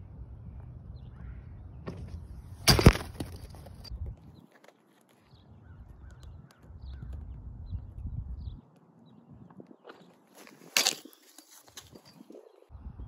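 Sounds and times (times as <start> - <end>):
wind buffeting microphone: 5.4 - 10.0, 11.8 - 13.0.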